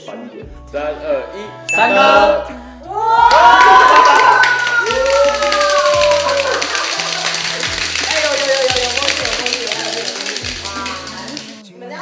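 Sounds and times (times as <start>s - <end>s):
background music with bass line: 0.0s - 11.6s
men cheering and shouting: 1.8s - 9.0s
hand clapping: 3.3s - 11.6s.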